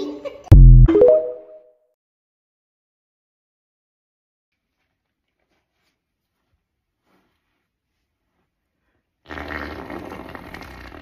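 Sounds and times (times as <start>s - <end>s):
mouth fart into cupped hands: 9.2s - 11.0s.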